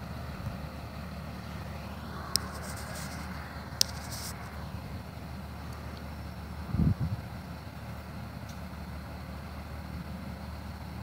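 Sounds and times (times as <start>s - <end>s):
diesel engines idling: 0.0s - 11.0s.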